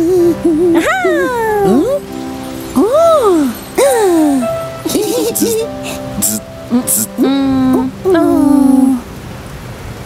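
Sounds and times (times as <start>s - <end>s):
cartoon child vocal sounds: 0.0s - 2.0s, 3.8s - 9.0s
soft background music: 0.0s - 9.1s.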